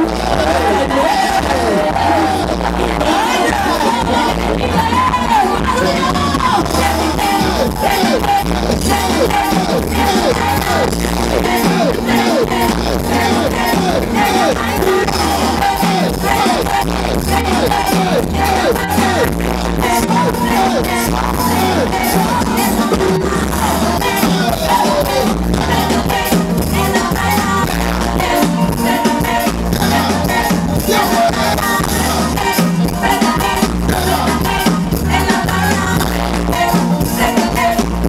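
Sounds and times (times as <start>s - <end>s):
heavy pulsing bass beat: 0.0s - 38.0s
live band music through speakers: 0.0s - 38.0s.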